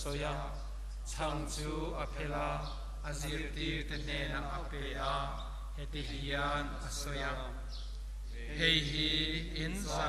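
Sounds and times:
man chanting a prayer: 0.0s - 7.7s, 8.3s - 10.0s.

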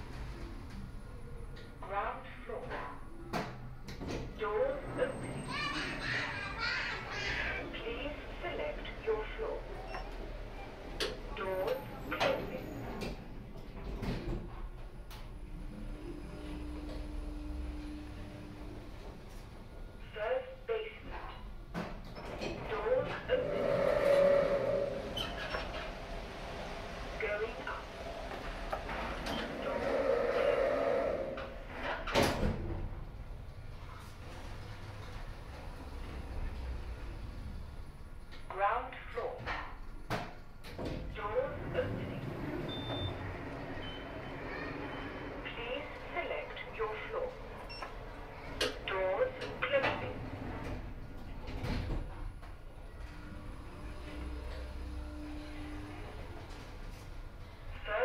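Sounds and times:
recorded voice announcements: 1.8s - 2.9s, 7.5s - 9.7s, 20.0s - 21.2s, 27.2s - 27.9s, 38.5s - 39.4s, 41.1s - 42.3s, 45.4s - 47.4s, 48.8s - 50.2s, 57.7s - 58.0s
lift doors whining: 9.0s - 20.0s, 21.6s - 38.5s, 39.5s - 57.7s.

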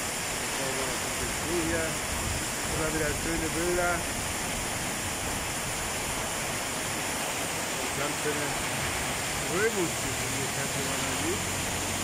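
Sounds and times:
heavy rain on pavement: 0.0s - 12.0s.

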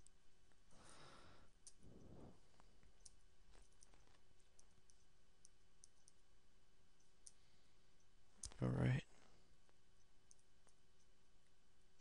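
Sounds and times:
computer mouse clicks: 2.9s - 6.2s, 7.0s - 7.4s, 10.0s - 11.1s.

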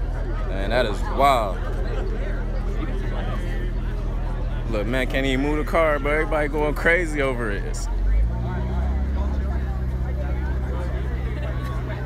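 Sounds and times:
car engine idling: 0.0s - 12.0s
faint crowd chatter: 0.0s - 12.0s.

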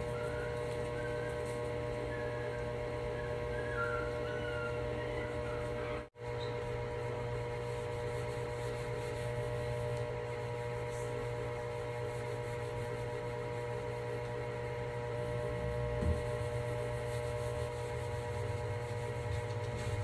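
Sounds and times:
cloth rubbing on wood: 7.5s - 14.2s, 14.8s - 20.0s.

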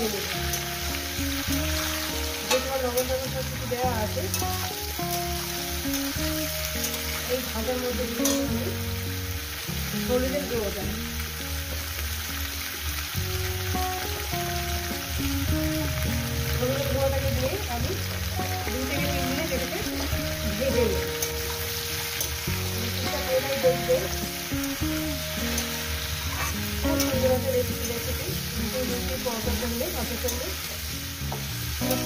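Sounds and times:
background music melody: 0.0s - 32.0s
vegetables sizzling in oil: 0.0s - 32.0s
metal spatula scraping: 25.4s - 28.0s.

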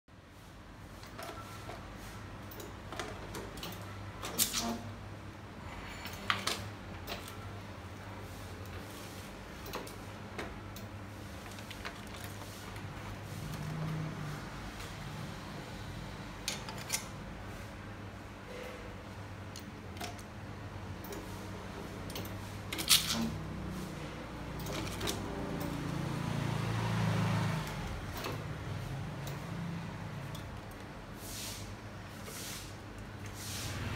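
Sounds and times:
cup-sealing machine humming: 19.5s - 33.9s.

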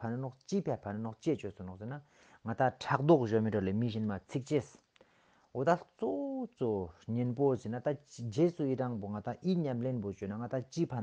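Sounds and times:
man talking: 0.0s - 4.9s, 5.5s - 11.0s.

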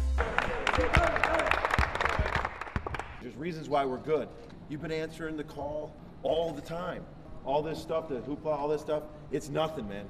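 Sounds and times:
hands clapping: 0.0s - 3.2s.

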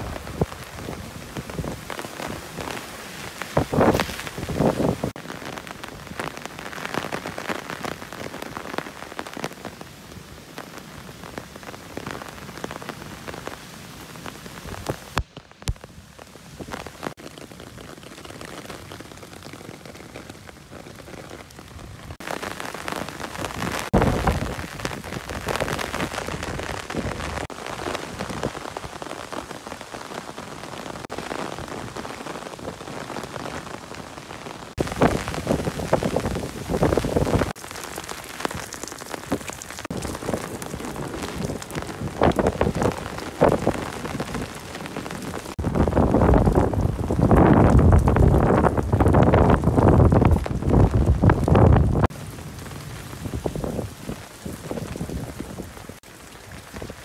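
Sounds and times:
wind gusts buffeting microphone: 0.0s - 5.1s, 23.4s - 29.1s, 34.8s - 37.6s, 38.5s - 56.0s
rain pattering on leaves: 0.0s - 57.0s.

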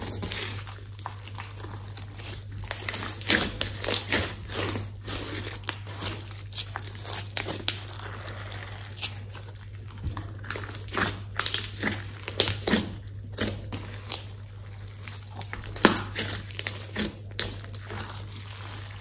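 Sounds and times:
steady low hum: 0.0s - 19.0s
sticky slime crackling and popping: 0.0s - 19.0s.

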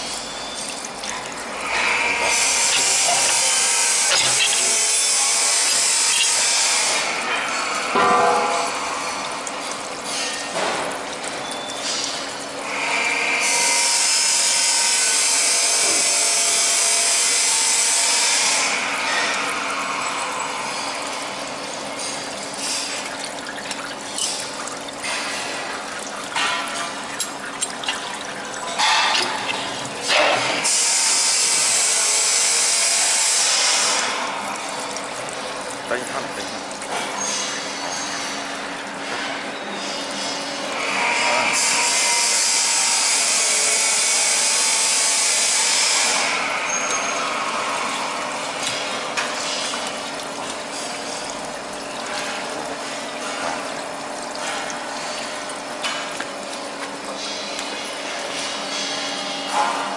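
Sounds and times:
faint steady machine hum: 0.0s - 59.9s.

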